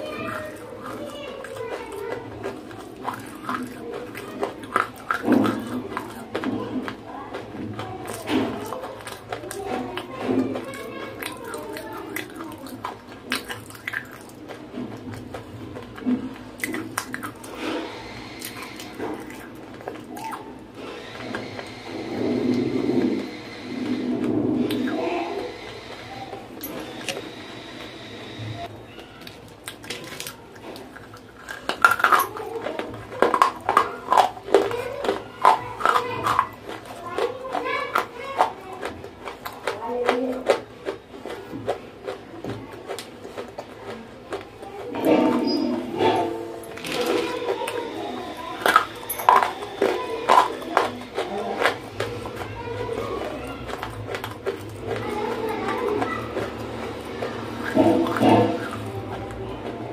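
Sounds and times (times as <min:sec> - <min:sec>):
clay being chewed with crunches: 0:00.0 - 0:59.9.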